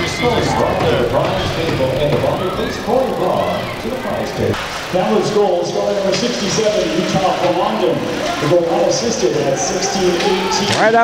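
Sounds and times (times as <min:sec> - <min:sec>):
indistinct voices: 0:00.0 - 0:11.0.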